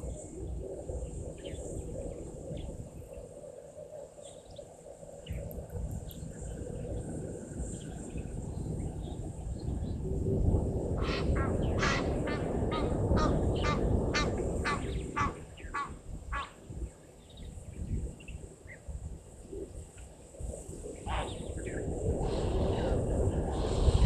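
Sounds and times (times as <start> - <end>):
wind noise on microphone: 0.0 - 24.0.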